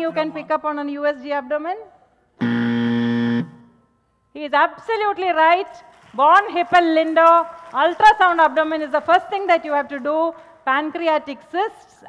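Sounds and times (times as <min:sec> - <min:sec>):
low buzzer: 0:02.4 - 0:03.8.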